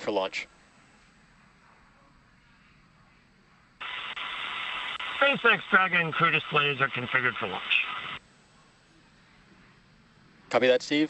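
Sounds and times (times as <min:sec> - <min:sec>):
radio channel hiss: 0:00.0 - 0:11.0.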